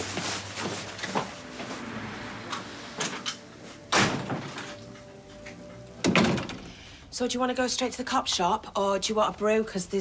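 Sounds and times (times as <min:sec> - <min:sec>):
door thudding shut: 0:06.0 - 0:06.7.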